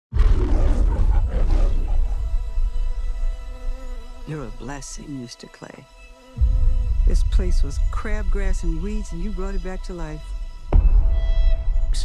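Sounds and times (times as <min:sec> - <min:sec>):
lion roaring: 0:00.1 - 0:02.9
deep rumble: 0:00.1 - 0:03.5, 0:06.4 - 0:12.0.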